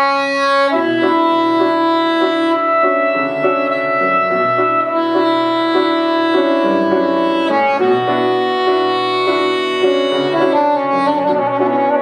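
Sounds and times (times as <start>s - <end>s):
grand piano accompaniment: 0.0s - 12.0s
soprano saxophone melody: 0.0s - 12.0s.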